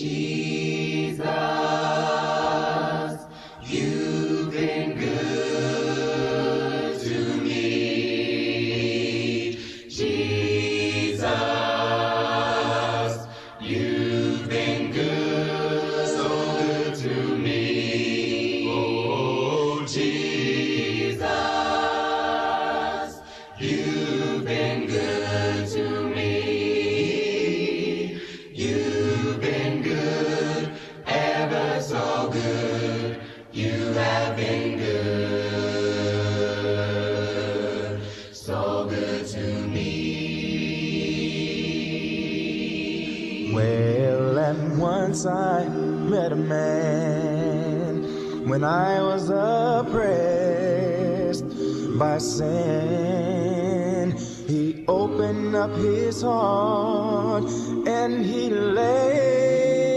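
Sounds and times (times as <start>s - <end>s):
choir singing a hymn: 0.0s - 59.9s.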